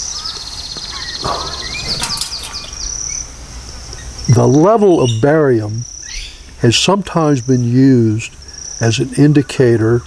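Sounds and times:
bird chirps: 0.0 - 6.5
insects trilling: 0.0 - 10.0.

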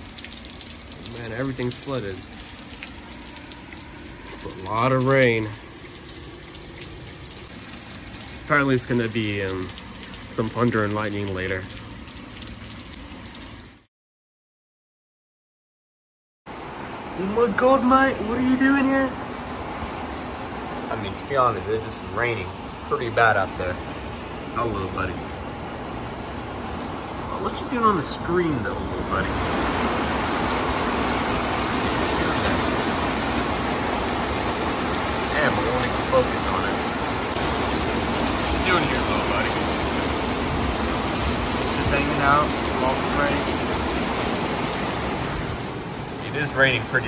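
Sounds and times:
rain falling: 0.0 - 13.9, 16.5 - 47.0.

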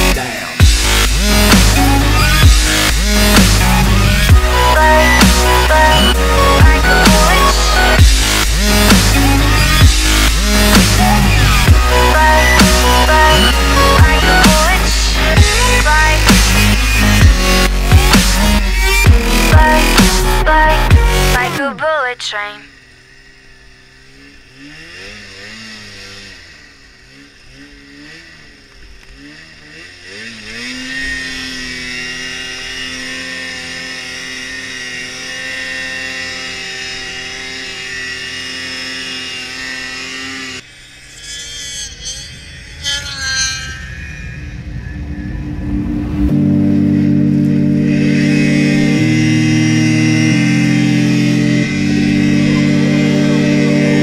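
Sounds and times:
electronic music with synth melody: 0.0 - 21.7, 44.2 - 54.0
snowmobile engine revving: 0.0 - 54.0.

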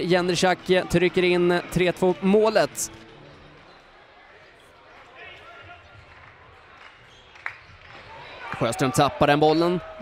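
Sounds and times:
faint voices in hall: 0.0 - 10.0.

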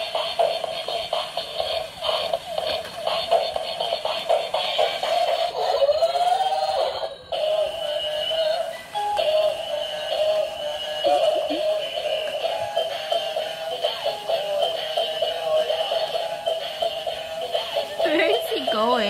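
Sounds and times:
robot toy electronic music: 0.0 - 19.0
synthesized singing voice: 4.8 - 19.0.

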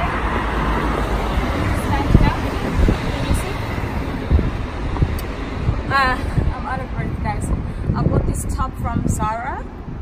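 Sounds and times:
rumble of passing cars: 0.0 - 10.0.

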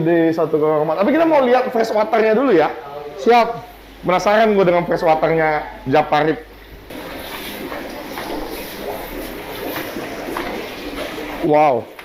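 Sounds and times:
aquarium water bubbling: 0.0 - 12.0.

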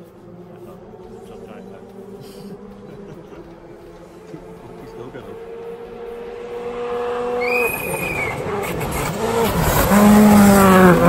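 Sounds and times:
rally car engine passing: 0.0 - 11.0.

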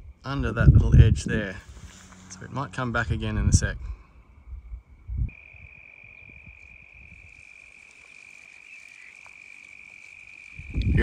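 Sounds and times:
insect trilling: 4.1 - 11.0.

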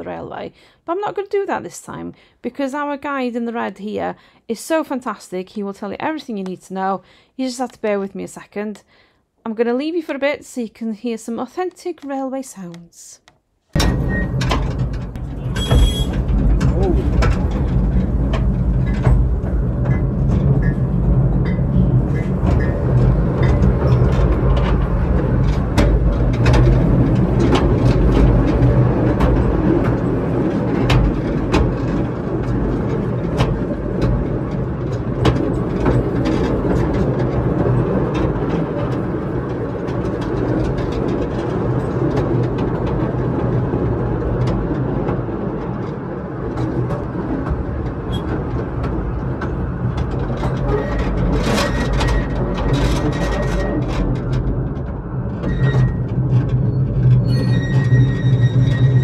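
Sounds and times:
train rumbling on track: 13.8 - 59.0
wheels clicking over rails: 13.8 - 59.0.

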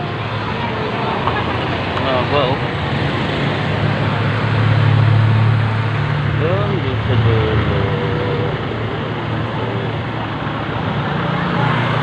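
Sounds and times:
road noise: 0.0 - 12.0
vehicle engine passing: 0.0 - 12.0.

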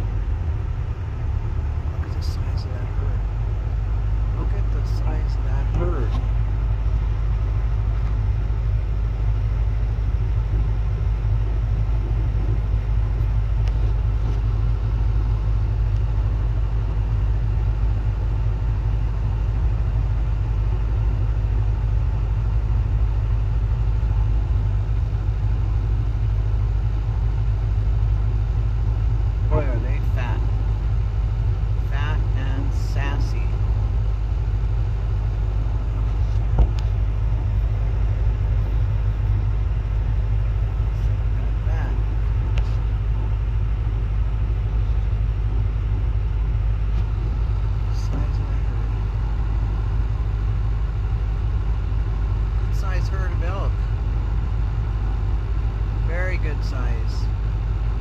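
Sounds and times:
vehicle engine idling: 0.0 - 58.0.

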